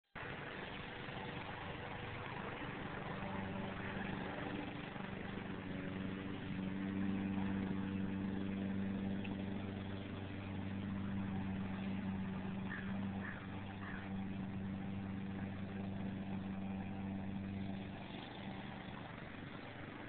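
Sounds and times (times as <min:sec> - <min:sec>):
engine-like hum: 0:00.1 - 0:20.0
outdoor background noise: 0:00.1 - 0:20.0.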